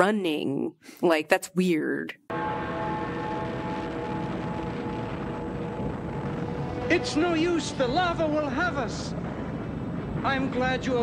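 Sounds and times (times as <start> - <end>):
steady rumbling effect: 2.3 - 11.0.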